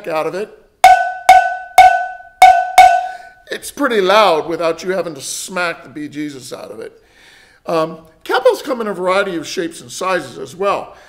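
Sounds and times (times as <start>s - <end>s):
cowbell struck with drumstick: 0.8s - 3.2s.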